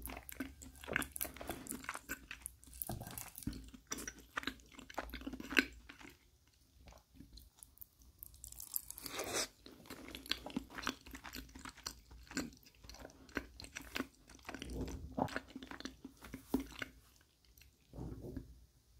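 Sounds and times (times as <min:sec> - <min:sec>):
person chewing food: 0:00.0 - 0:17.9.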